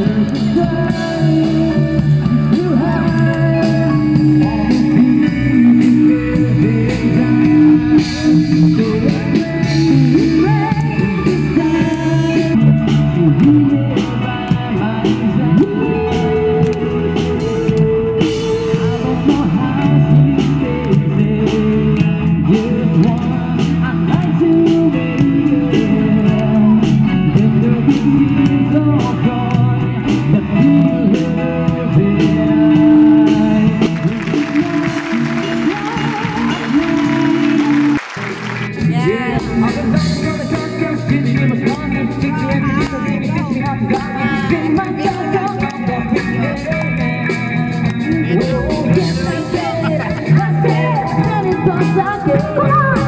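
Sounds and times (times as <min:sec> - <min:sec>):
pop-rock song with vocals: 0:00.0 - 0:53.0.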